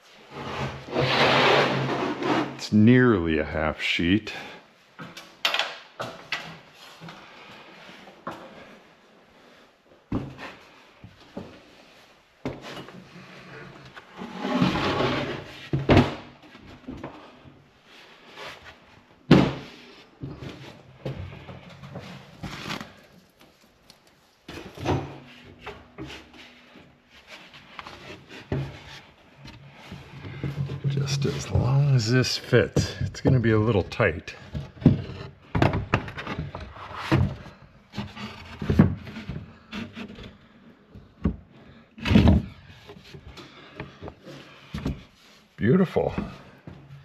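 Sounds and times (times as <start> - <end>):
plywood scraping against framing: 0.3 - 2.6, 12.7 - 15.8.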